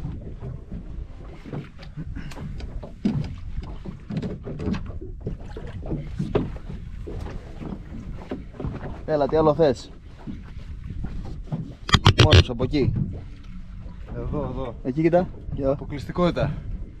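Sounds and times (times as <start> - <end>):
wind and water rumble: 0.0 - 17.0.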